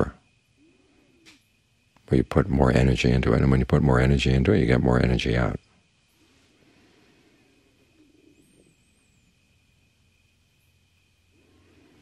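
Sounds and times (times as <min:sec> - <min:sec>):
faint chirping glide: 0:00.0 - 0:12.0
faint steady high tone: 0:00.0 - 0:12.0.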